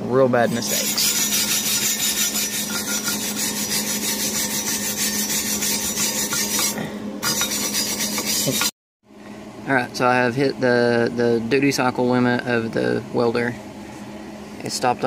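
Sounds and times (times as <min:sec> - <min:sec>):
wire brush scrubbing metal: 0:00.4 - 0:08.7.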